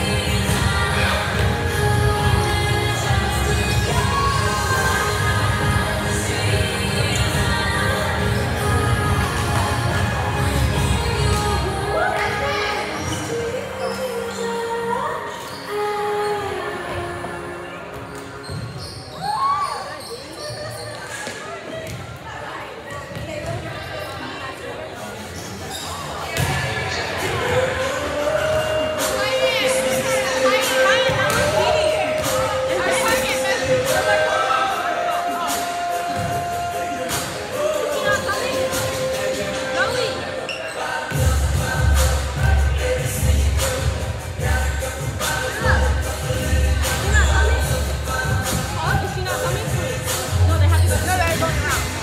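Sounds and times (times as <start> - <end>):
background music: 0.0 - 18.4, 27.0 - 52.0
voices in a hall: 0.0 - 52.0.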